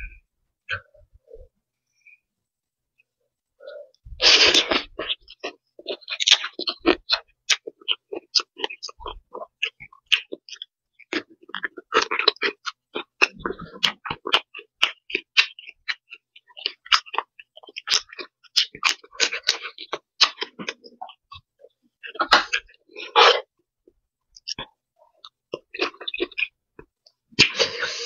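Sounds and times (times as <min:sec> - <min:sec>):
person chewing and lip smacking: 0:03.6 - 0:28.0
crunchy bites: 0:04.2 - 0:23.5, 0:24.4 - 0:27.8.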